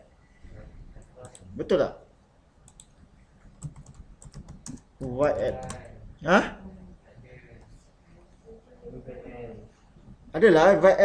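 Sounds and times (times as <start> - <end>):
typing on computer keyboard: 3.6 - 5.9.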